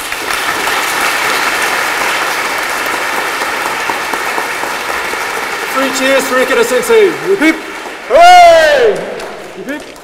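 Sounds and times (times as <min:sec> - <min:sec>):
large audience applauding: 0:00.0 - 0:10.0.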